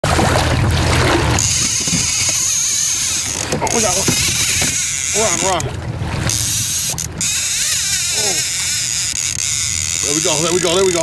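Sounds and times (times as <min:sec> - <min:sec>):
fishing reel drag screaming: 0:01.4 - 0:11.0.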